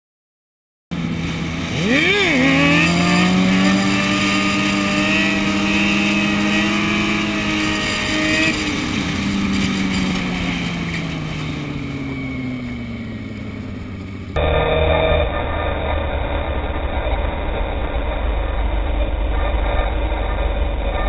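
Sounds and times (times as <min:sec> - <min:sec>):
motorcycle engine revving: 0:00.9 - 0:21.0.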